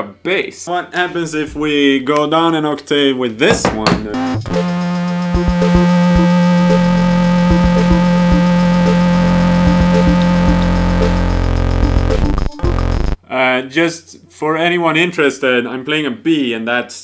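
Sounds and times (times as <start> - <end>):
buzzy toy synthesizer notes: 4.0 - 13.2.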